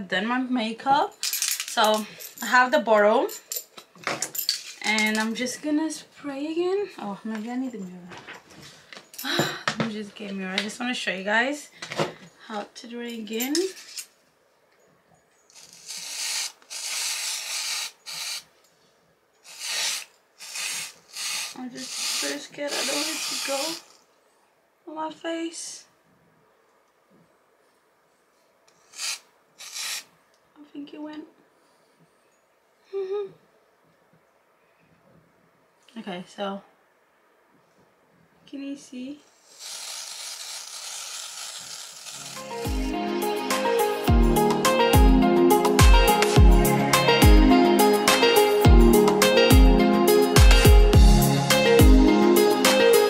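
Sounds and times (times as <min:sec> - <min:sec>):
aerosol spray hissing: 0:15.6 - 0:18.5, 0:19.5 - 0:24.0, 0:28.8 - 0:30.1, 0:39.4 - 0:42.8
background music with a beat: 0:42.4 - 0:53.0.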